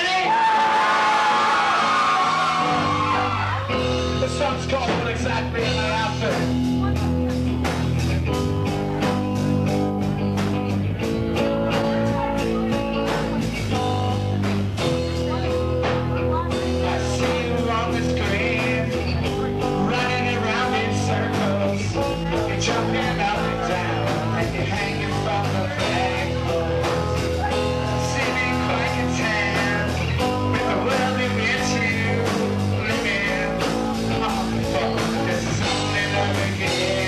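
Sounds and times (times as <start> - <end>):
bass and drums: 0.0 - 37.0
electric guitar chords: 0.0 - 37.0
live rock band playing: 0.0 - 37.0.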